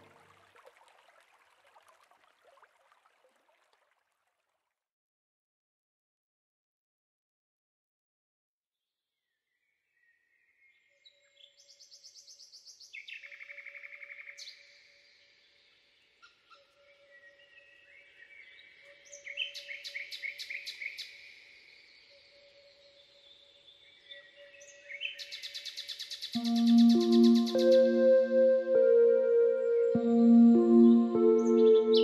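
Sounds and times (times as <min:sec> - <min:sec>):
faint steady low tone: 0:26.4 - 0:32.0.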